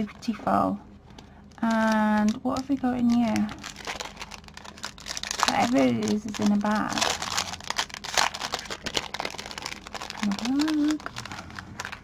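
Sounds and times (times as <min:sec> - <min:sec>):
plastic bag crinkling: 0:01.2 - 0:12.0.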